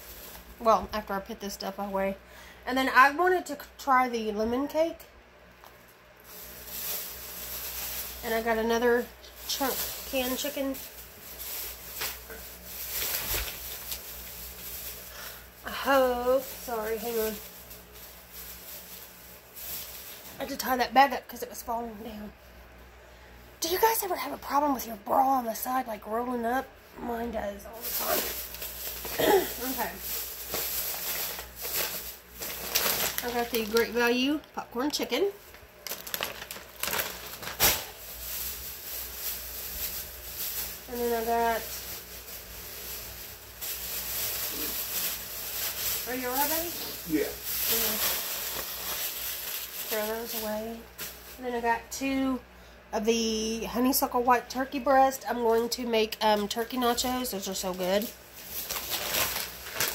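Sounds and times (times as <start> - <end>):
plastic bag rustling: 0.0 - 2.1, 6.2 - 21.9, 27.5 - 52.2, 55.1 - 59.9.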